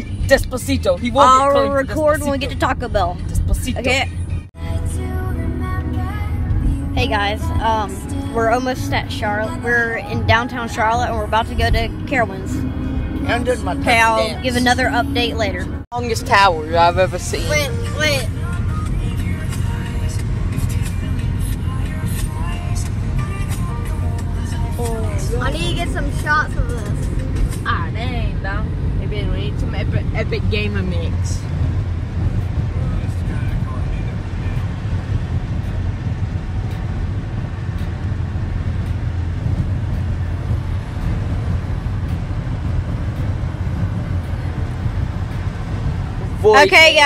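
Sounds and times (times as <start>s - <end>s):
car road rumble: 0.0s - 47.0s
music playing: 0.0s - 47.0s.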